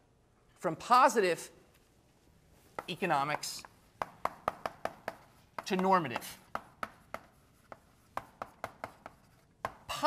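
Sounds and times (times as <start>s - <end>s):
chalk tapping on blackboard: 2.7s - 3.0s, 3.6s - 10.0s.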